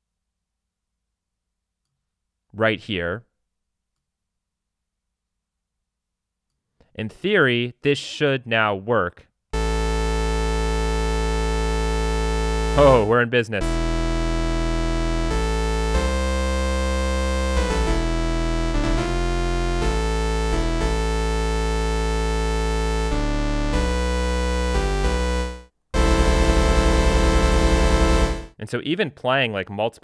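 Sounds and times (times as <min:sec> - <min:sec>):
sawtooth synthesizer chords: 0:09.6 - 0:28.5.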